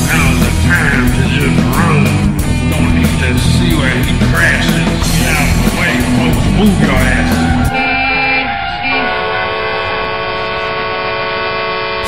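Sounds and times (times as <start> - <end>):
rock song: 0.0 - 10.0
long held chord: 0.1 - 4.0, 5.1 - 12.0.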